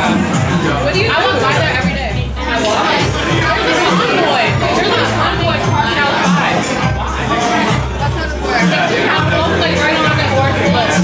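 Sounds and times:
background music: 0.0 - 11.0
people chatting: 0.0 - 11.0.

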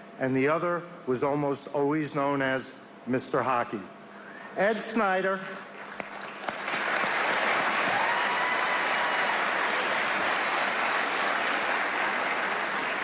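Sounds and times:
large audience applauding: 5.8 - 13.0.

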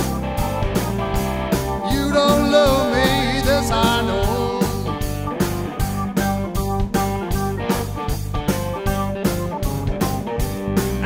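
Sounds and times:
electric guitar: 0.0 - 11.0
organ: 0.0 - 11.0
steady drum beat: 0.0 - 11.0.

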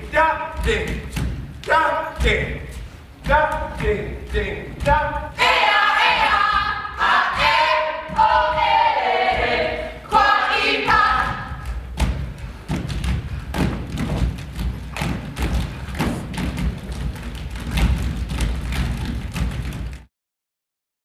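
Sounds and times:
bare feet stomping on stage: 0.6 - 5.3, 10.9 - 20.1
group chanting in unison: 5.4 - 11.6.

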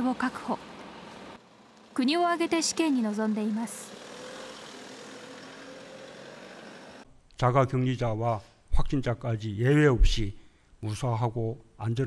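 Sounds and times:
van engine driving past: 0.0 - 7.0
road noise: 0.0 - 7.1.

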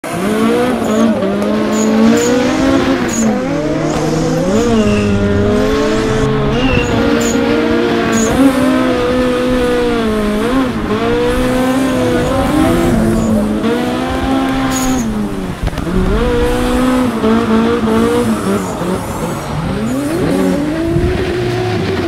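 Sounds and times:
engine revving: 0.0 - 22.0.

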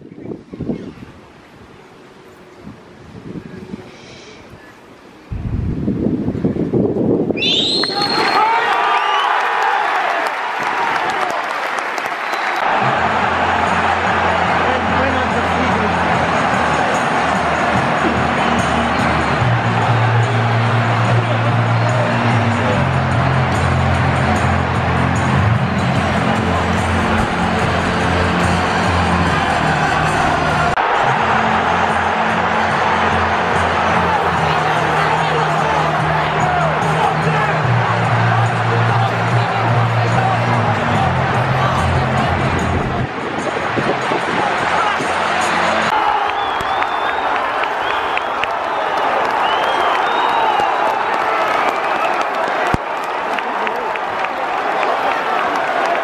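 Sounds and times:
high whistle: 7.4 - 9.4, 46.1 - 48.5, 49.3 - 50.8
crowd applause and cheering: 7.5 - 56.0.

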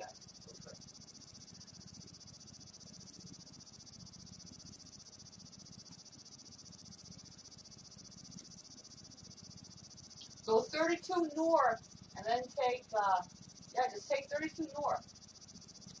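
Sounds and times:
insects trilling: 0.0 - 16.0.

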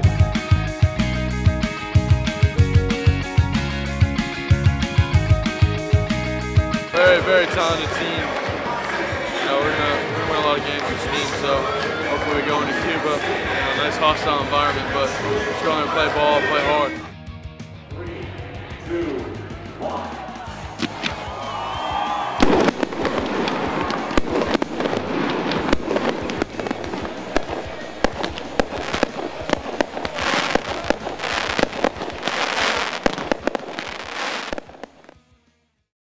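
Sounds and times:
fireworks bangs and crackles: 6.7 - 12.8, 20.7 - 35.2.

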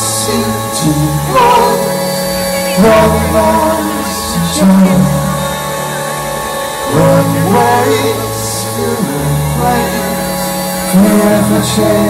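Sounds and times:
held low bass note: 0.0 - 12.0
live indie pop band playing: 0.0 - 12.0
sustained keyboard chords: 0.0 - 12.0.

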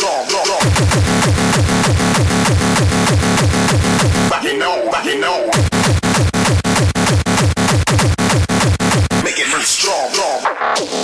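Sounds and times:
fast kick drum: 0.6 - 4.3, 5.6 - 9.2
sustained low synth: 0.7 - 4.4.

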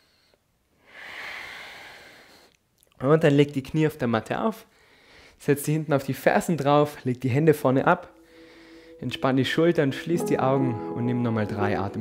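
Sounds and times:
deep breath out: 0.0 - 2.5, 4.7 - 5.4, 8.2 - 9.0.

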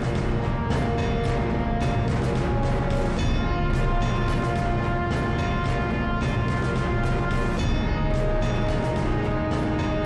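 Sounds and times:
news theme music: 0.0 - 10.0.

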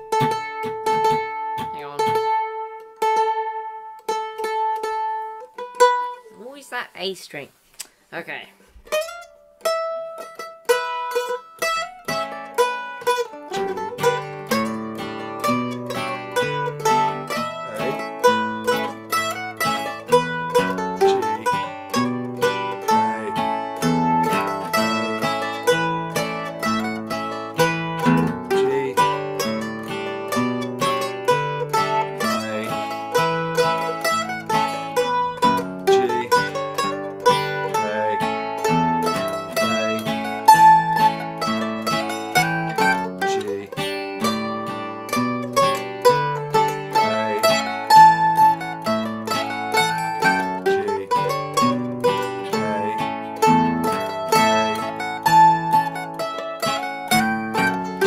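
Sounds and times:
plucked string melody: 0.0 - 6.8, 8.6 - 58.0
guitar accompaniment: 0.0 - 58.0.

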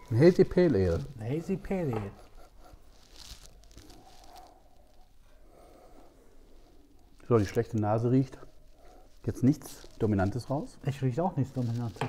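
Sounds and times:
man talking: 0.0 - 2.3, 7.2 - 8.5, 9.2 - 12.0
faint sniff: 2.2 - 7.2, 8.4 - 10.0.

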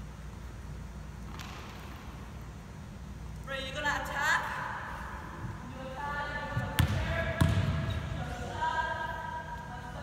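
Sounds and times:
gymnasium room hum: 0.0 - 10.0.

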